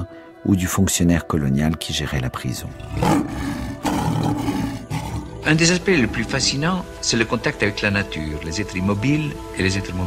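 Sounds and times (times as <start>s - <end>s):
lion roaring: 2.8s - 6.6s.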